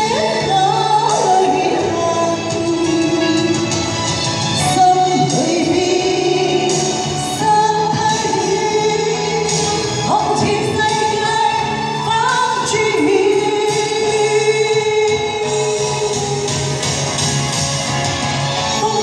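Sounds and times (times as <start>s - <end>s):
woman singing a slow ballad: 0.0s - 4.0s, 4.6s - 16.9s, 18.7s - 19.0s
recorded backing music: 0.0s - 19.0s.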